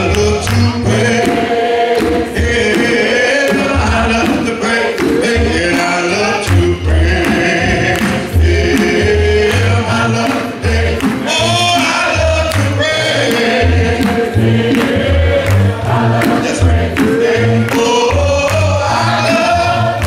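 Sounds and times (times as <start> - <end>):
male lead singer: 0.0 - 1.5, 2.3 - 14.8, 16.2 - 20.0
group of voices singing: 0.0 - 20.0
pulsing bass line: 5.4 - 20.0.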